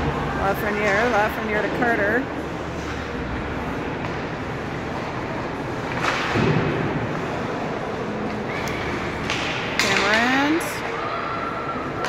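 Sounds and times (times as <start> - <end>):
ice rink crowd noise: 0.0 - 12.0.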